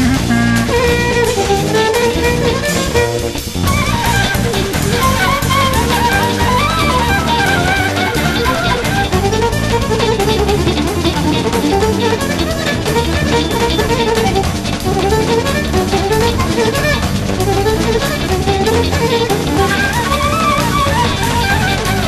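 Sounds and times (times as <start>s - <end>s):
folk band music: 0.0s - 22.0s.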